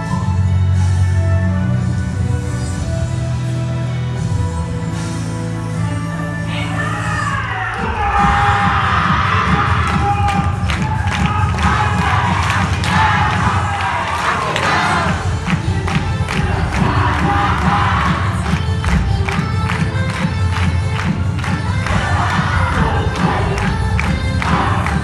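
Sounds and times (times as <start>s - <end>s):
crowd shouting and cheering: 6.2s - 25.0s
dance music with driving beat: 7.8s - 25.0s.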